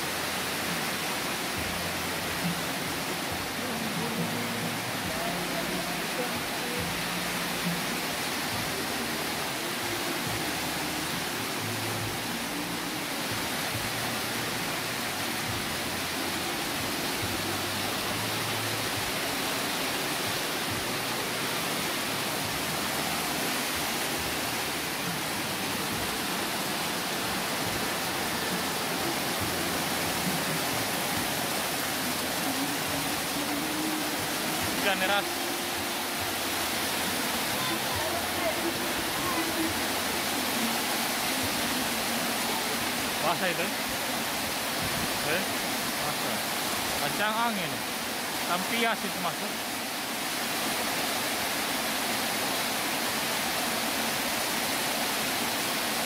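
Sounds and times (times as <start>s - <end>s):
heavy rain downpour: 0.0s - 56.0s.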